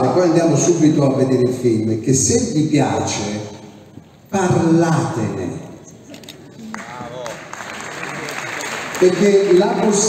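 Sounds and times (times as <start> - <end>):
audience applauding: 6.6 - 10.0.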